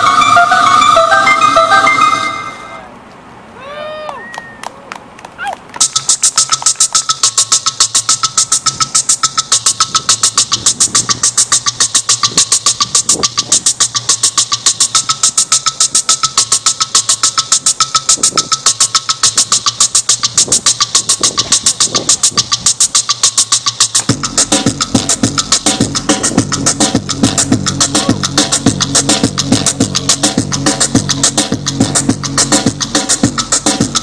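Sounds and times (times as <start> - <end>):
industrial electronic music: 0.0 - 2.9, 5.8 - 34.0.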